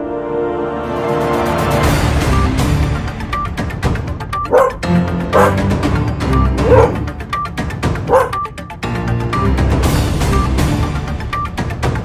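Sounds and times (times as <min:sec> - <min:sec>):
dog barking: 0:04.5 - 0:05.6, 0:06.6 - 0:07.1, 0:08.0 - 0:08.5.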